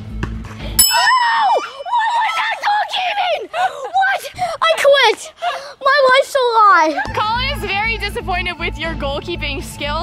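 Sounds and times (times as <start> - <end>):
sharp bell ring: 0.8 - 1.4
children shouting and squealing: 0.9 - 7.9.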